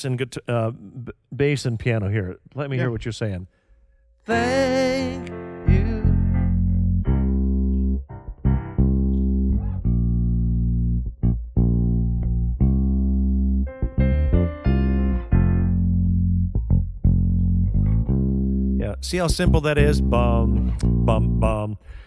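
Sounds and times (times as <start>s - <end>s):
piano chords: 4.3s - 19.2s
electric bass guitar: 5.0s - 22.0s.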